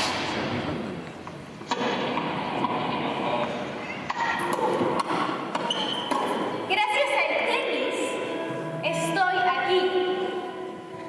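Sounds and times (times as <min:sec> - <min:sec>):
film soundtrack over loudspeakers: 0:00.0 - 0:11.0.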